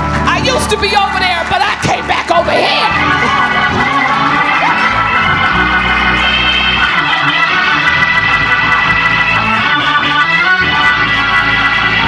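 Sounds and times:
congregation calling out and cheering: 0.0 - 12.0
church organ chords: 0.4 - 12.0.

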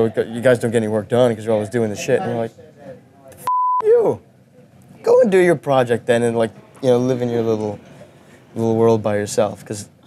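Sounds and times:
censor bleep: 3.4 - 3.9.

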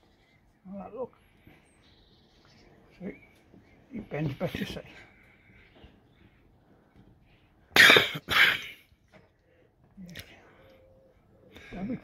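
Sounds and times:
man coughing: 7.8 - 8.8.

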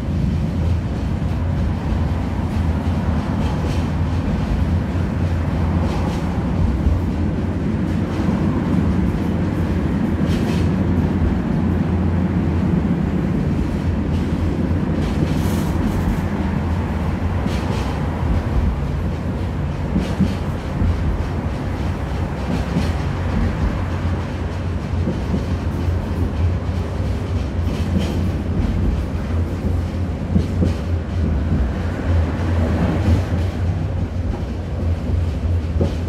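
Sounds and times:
tram rumbling: 0.0 - 36.0.

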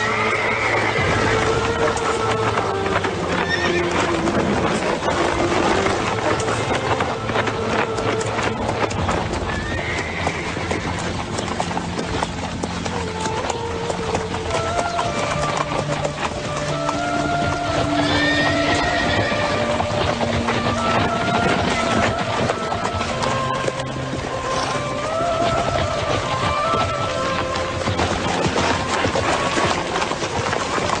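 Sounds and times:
horse whinnying: 0.0 - 23.6
film score of held notes: 0.0 - 31.0
horse hooves clopping: 0.0 - 31.0.

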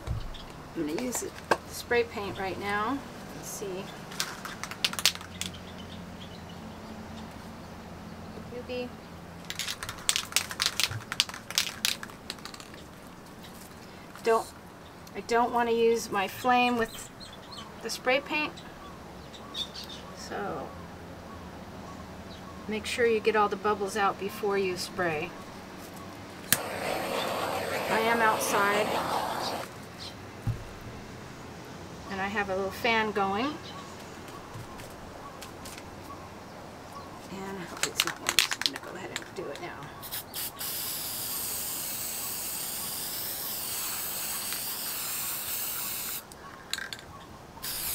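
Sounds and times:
spray paint can rattling: 4.1 - 5.6, 9.5 - 12.9, 26.5 - 29.7, 40.1 - 46.2, 47.6 - 47.9
electric fan running: 26.4 - 29.7.

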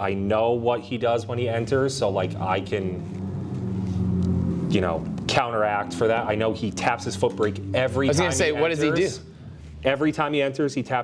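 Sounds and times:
low drone with pitched tones: 0.0 - 10.8.

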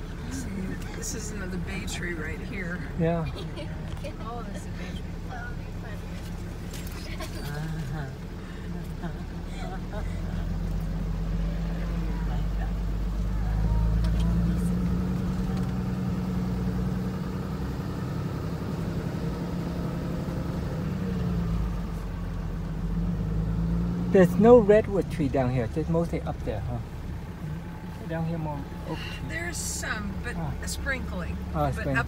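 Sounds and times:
vehicle engine running at low speed: 0.0 - 32.0.

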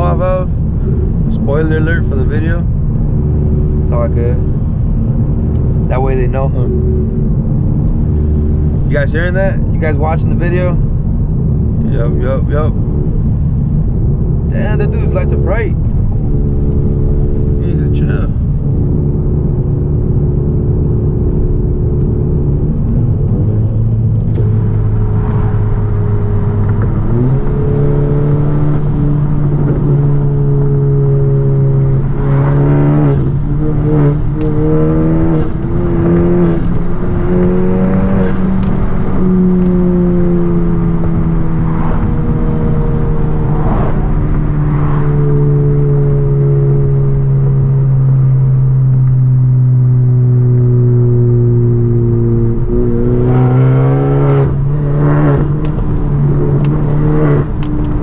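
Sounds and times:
car engine droning: 0.0 - 58.0
exhaust crackles: 0.0 - 58.0.

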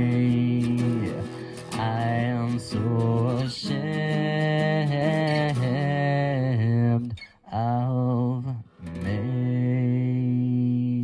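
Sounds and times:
man singing wordless held notes: 0.0 - 11.0.

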